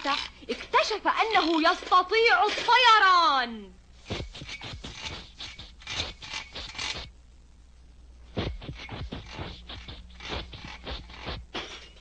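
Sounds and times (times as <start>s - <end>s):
hand tool rasping on metal: 4.0s - 7.1s, 8.4s - 11.6s.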